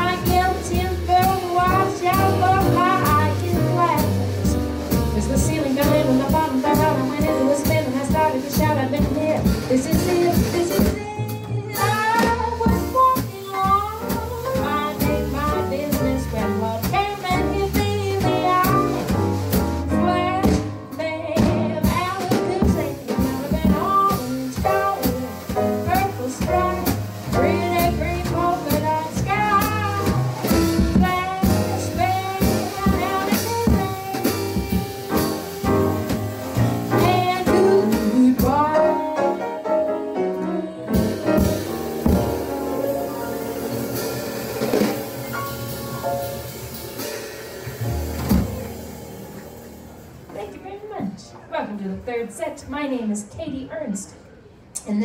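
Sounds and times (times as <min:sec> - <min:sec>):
woman singing: 0:00.0 - 0:19.2, 0:19.9 - 0:44.2
upright double bass: 0:00.0 - 0:50.3
drum kit played with sticks: 0:00.0 - 0:51.1
piano: 0:00.0 - 0:51.4.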